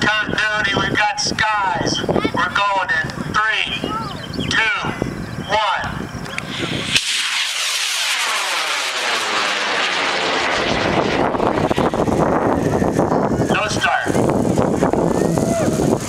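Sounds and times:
rocket motor rushing roar: 6.3s - 16.0s.

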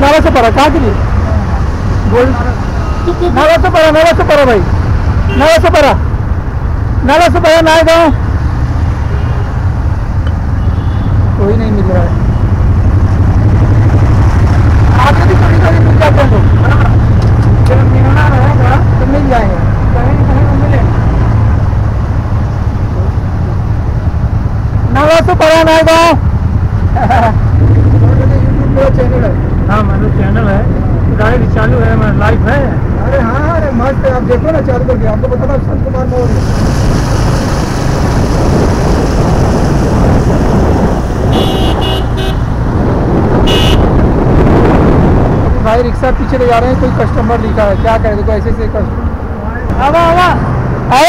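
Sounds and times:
road noise: 0.0s - 51.0s
vehicle horn toots: 10.6s - 11.2s, 41.3s - 42.5s, 43.4s - 43.9s.

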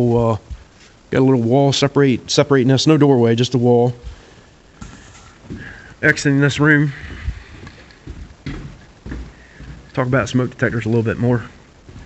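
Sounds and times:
footsteps on wooden floor: 0.4s - 1.0s, 4.0s - 12.0s.

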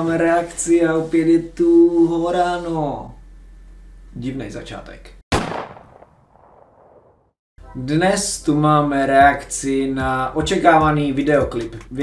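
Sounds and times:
sudden gunshot-like bang: 5.3s - 7.2s.

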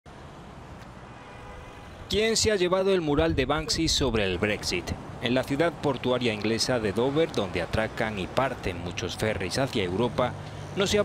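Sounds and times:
distant road traffic rumble: 0.1s - 11.0s.

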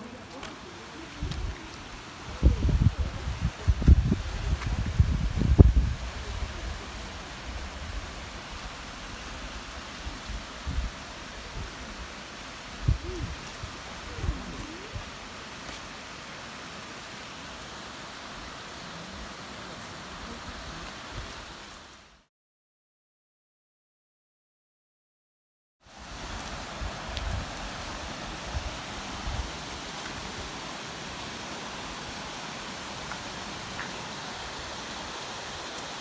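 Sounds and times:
stream rushing over stone weir: 0.0s - 22.2s, 25.9s - 36.0s.

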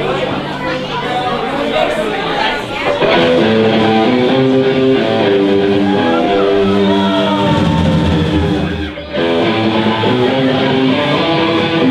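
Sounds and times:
crowd talking: 0.0s - 11.9s
electric guitar chords: 2.8s - 11.9s.

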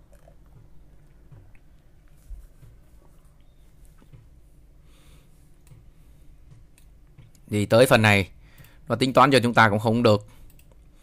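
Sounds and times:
low room hum: 0.0s - 11.0s
computer mouse clicks: 10.4s - 10.9s.

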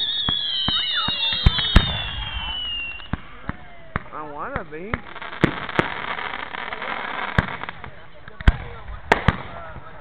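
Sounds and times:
firework whistle sliding down: 0.0s - 3.8s
fireworks bangs and cracks: 0.0s - 10.0s.

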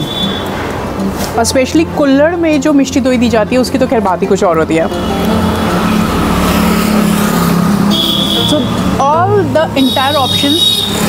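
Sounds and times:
road traffic noise: 0.0s - 11.0s
engine running: 4.5s - 9.6s
high-pitched tone: 4.7s - 10.4s.

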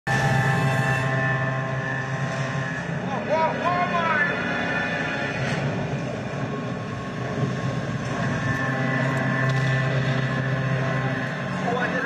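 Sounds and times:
film soundtrack low rumble: 0.1s - 12.0s
wavering sliding tone: 0.1s - 12.0s.

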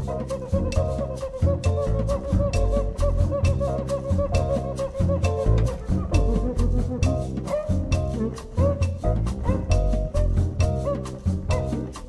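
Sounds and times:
double bass: 0.0s - 12.0s
drums and percussion: 0.0s - 12.0s
piano: 0.0s - 12.0s.

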